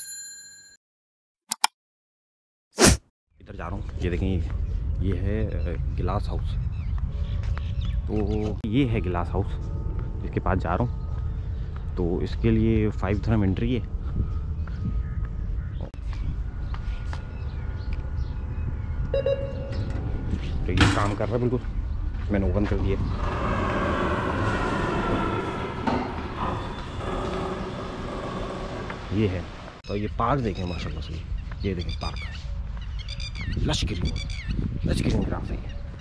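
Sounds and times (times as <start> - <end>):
low rumble: 13.8 - 29.8
electronic beep: 19.1 - 19.9.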